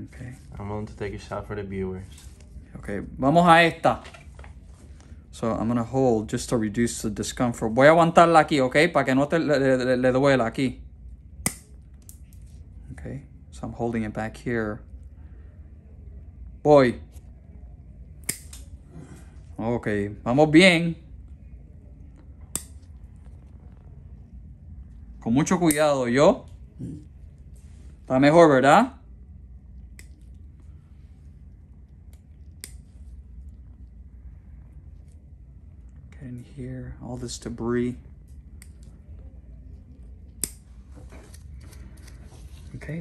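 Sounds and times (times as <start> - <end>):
nail nippers snapping toenail: 18.2 - 18.7.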